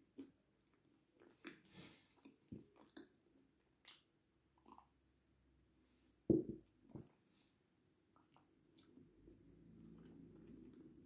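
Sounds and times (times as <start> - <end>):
faint chewing clicks and smacks: 0.1 - 5.0, 8.1 - 11.0.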